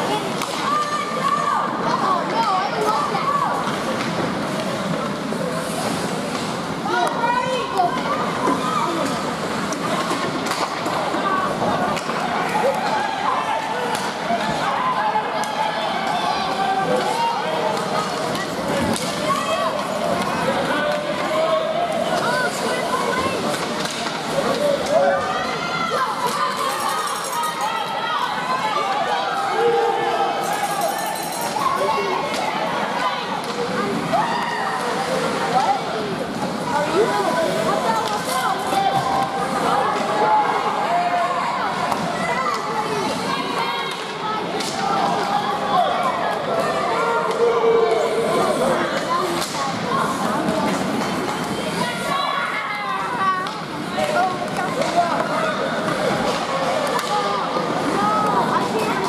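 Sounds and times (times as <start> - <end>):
crowd talking and calling out: 0.0 - 59.0.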